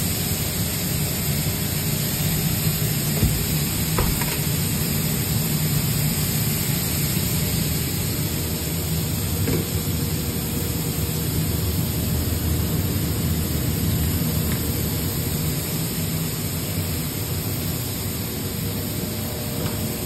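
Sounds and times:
food sizzling on griddle: 0:00.0 - 0:19.1.

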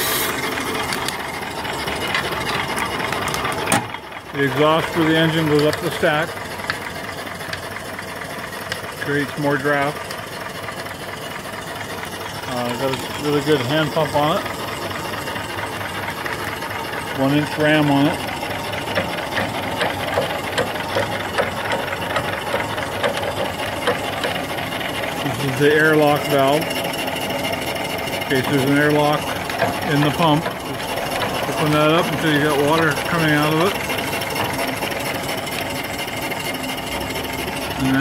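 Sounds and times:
steam hiss: 0:00.0 - 0:00.5
steam engine clatter: 0:00.0 - 0:38.0.

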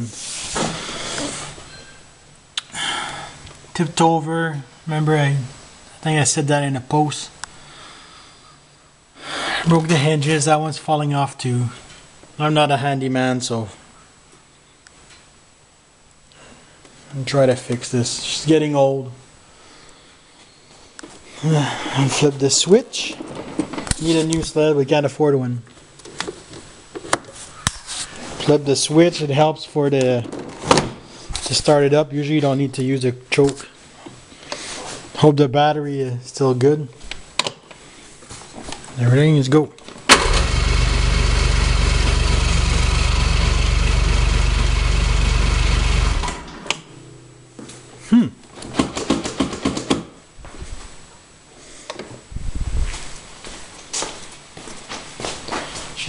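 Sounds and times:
faint hiss: 0:00.0 - 0:23.2
electric starter cranking engine: 0:40.1 - 0:46.7.

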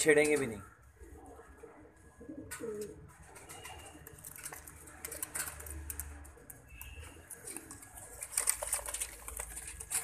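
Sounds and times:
pigeon cooing: 0:01.0 - 0:04.0
pigeons clicking and tapping: 0:02.3 - 0:10.0.

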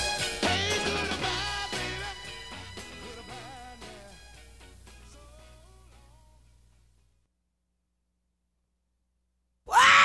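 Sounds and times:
soul band playing: 0:00.0 - 0:05.6
long vocal cry: 0:09.7 - 0:10.0.

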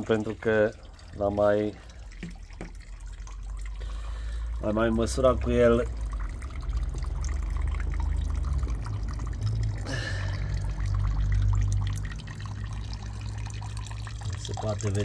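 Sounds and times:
liquid stream splashing into tub: 0:00.0 - 0:15.0.

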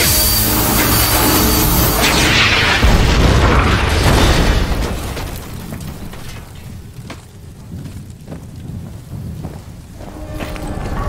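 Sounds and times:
fire crackles: 0:00.0 - 0:11.0
fire rumbling: 0:00.0 - 0:11.0.

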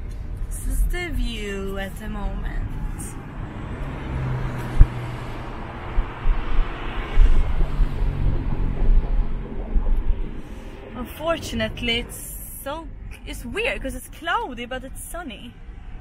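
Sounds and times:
low thumps: 0:00.0 - 0:13.6
car engine hum: 0:00.0 - 0:14.7
road noise: 0:00.0 - 0:16.0.

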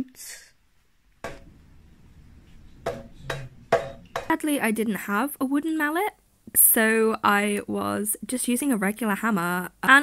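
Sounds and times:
hammer striking leather shoe: 0:02.8 - 0:04.3.

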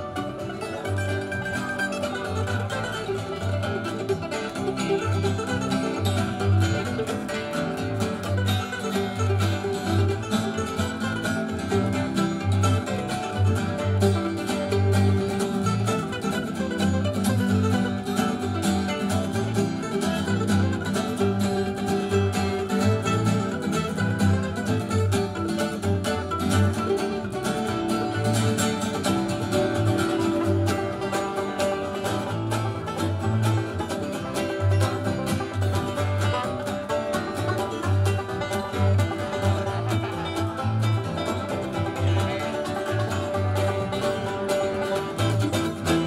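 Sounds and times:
bluegrass band playing: 0:00.0 - 0:46.0.

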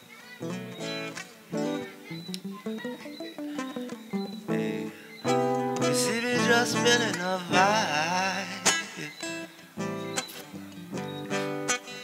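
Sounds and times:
acoustic guitar picked notes: 0:00.0 - 0:12.0
strummed guitar chords: 0:00.4 - 0:12.0.

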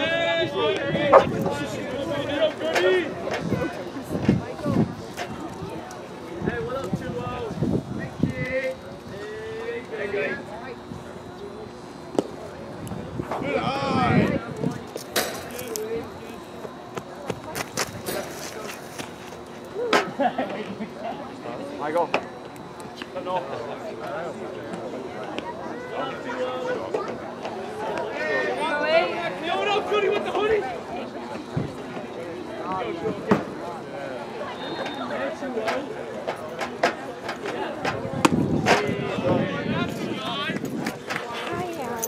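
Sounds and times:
distant voices: 0:00.0 - 0:42.0.

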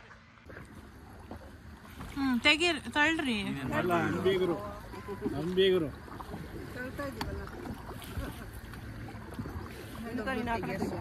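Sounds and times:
paddles splashing in water: 0:00.0 - 0:11.0.

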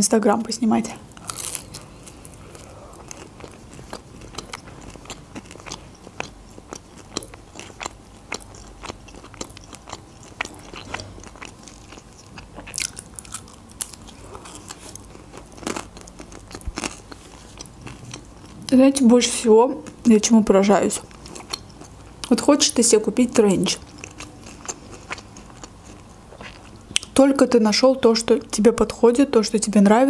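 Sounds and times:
crunchy pizza chewing: 0:01.1 - 0:18.7, 0:21.0 - 0:22.3, 0:23.8 - 0:27.1.

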